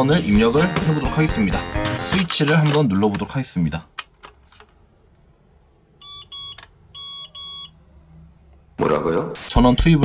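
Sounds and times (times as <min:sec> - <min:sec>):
short electronic beeps: 0:06.0 - 0:07.8.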